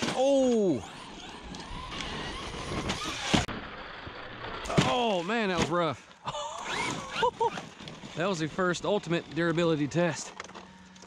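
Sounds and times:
rc truck crashing on gravel: 0.0s - 6.0s, 6.7s - 11.0s
electric motor whine: 0.5s - 4.5s.

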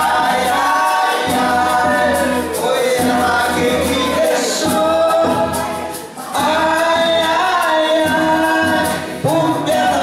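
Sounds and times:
acoustic guitar: 0.0s - 10.0s
woman and men singing folk song: 0.0s - 10.0s.

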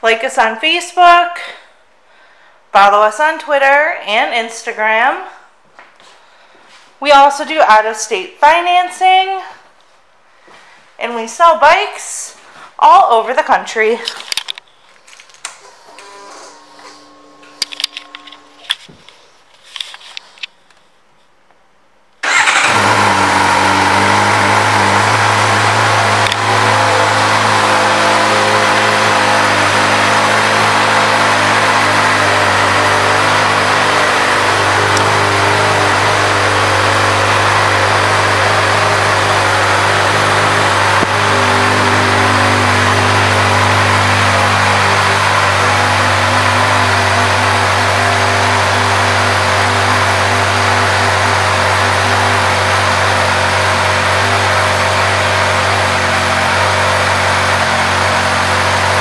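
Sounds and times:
motorcycle engine starting and idling: 15.4s - 18.9s, 22.2s - 59.0s.

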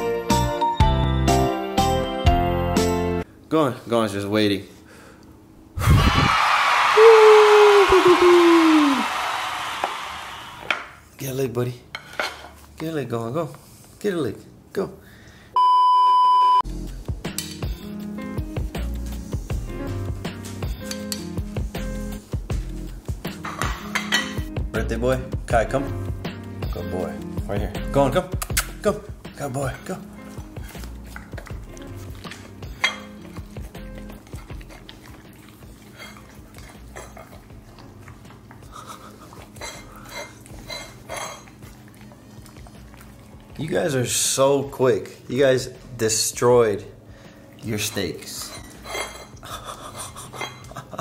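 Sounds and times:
background music: 0.0s - 3.3s, 16.6s - 41.3s
plates clinking on tile floor: 11.9s - 12.6s, 23.4s - 24.5s, 32.8s - 33.2s, 48.4s - 49.4s
loud steady beep tone: 15.6s - 16.6s
dogs licking: 29.4s - 44.5s.

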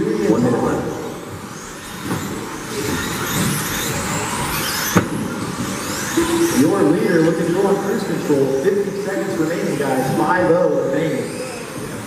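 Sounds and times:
electric motors whining: 0.0s - 12.0s.

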